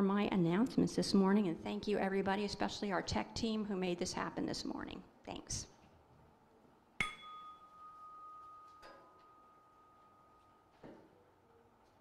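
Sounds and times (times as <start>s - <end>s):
small chime ringing: 7.0s - 10.8s.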